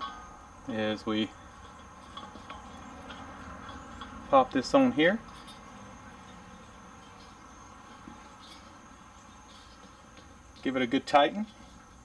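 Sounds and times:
high insect drone: 0.0s - 12.0s.

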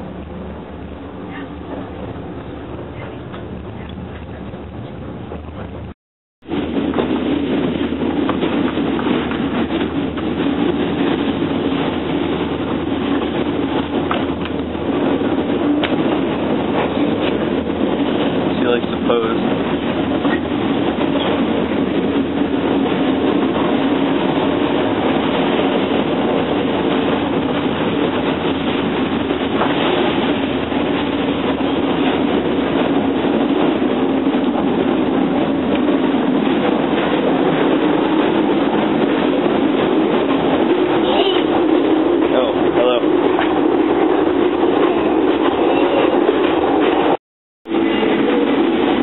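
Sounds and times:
wheels clicking and rattling: 0.0s - 5.9s, 6.5s - 49.0s
train rumble and hum: 0.0s - 49.0s.

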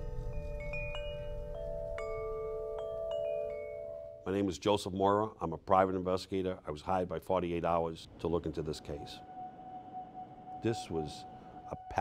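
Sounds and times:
metal tube wind chime ringing: 0.0s - 4.4s.

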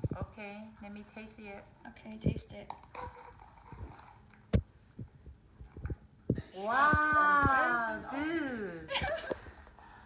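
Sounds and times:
soft low thumps: 4.5s - 7.9s.

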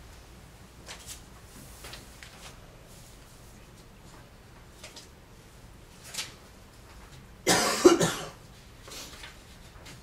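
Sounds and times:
person coughing: 7.4s - 8.4s.

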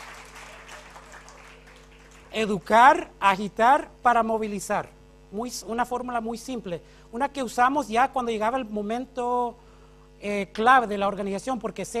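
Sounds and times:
faint audience applause: 0.0s - 2.4s
low electrical hum: 0.0s - 12.0s.

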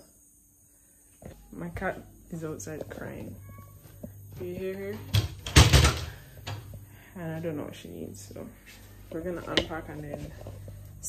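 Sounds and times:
knocking on a rattling door: 5.0s - 6.2s.

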